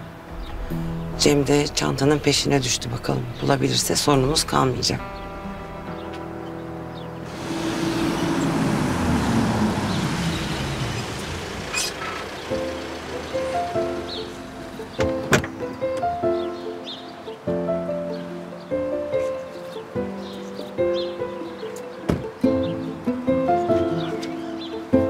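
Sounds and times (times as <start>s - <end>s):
soft background music: 0.0s - 9.5s, 12.4s - 25.0s
car driving up: 6.9s - 16.1s.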